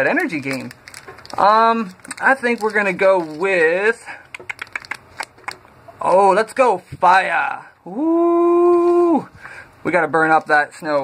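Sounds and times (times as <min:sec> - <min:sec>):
foil wrapper crinkling: 0:00.0 - 0:05.6.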